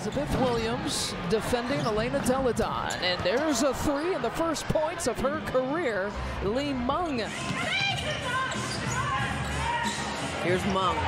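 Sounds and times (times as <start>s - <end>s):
arena crowd noise: 0.0s - 11.0s
sneaker squeaks: 1.6s - 3.6s, 7.3s - 10.2s.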